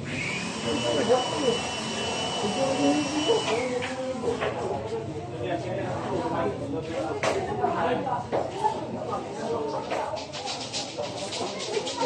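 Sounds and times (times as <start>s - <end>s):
small electric motor whining: 0.0s - 4.4s
murmur of voices: 2.4s - 12.0s.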